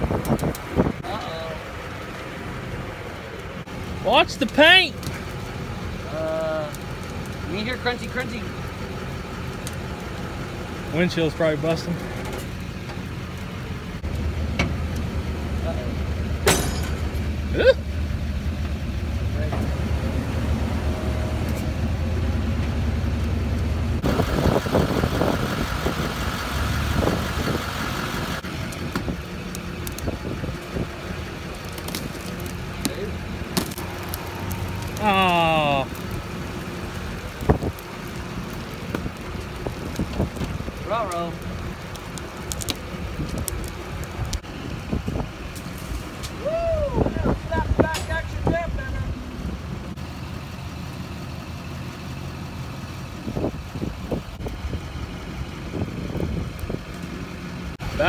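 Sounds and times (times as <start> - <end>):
winches and engine rumbling: 0.0 - 58.0
crunching knocks of metal and glass: 16.4 - 17.4, 31.6 - 34.9.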